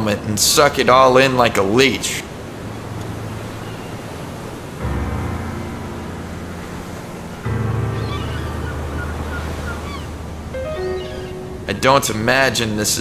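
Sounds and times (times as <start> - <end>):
ocean waves washing on shore: 0.0 - 13.0
low piano chords: 2.6 - 13.0.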